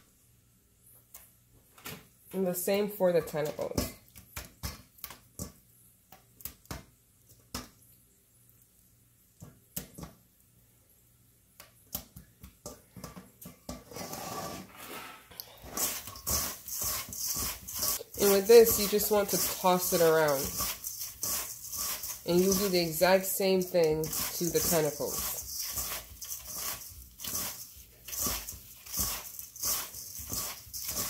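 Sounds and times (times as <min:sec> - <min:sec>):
rustling in dry breading: 0:14.8 - 0:31.0.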